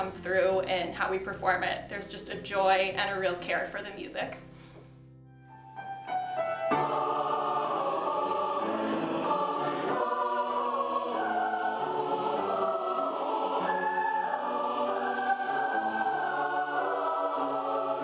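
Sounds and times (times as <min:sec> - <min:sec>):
choir singing chords: 0:05.5 - 0:18.0.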